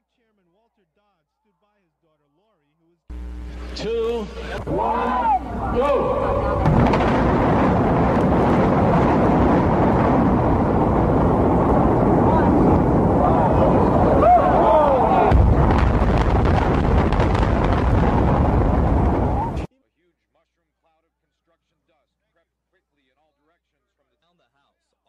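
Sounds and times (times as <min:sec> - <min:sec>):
deep rumble: 0:03.1 - 0:19.7
crowd voices and shouts: 0:03.6 - 0:15.8, 0:18.2 - 0:19.7
demolition explosive charges cracking: 0:03.8 - 0:19.7.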